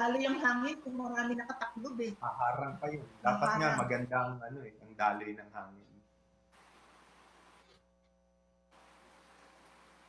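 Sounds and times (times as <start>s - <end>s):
faint hiss: 0.0s - 7.8s, 8.7s - 10.0s.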